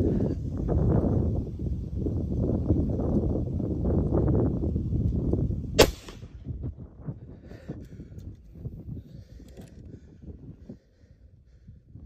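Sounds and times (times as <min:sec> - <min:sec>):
rifle shot: 0:05.8 - 0:06.4.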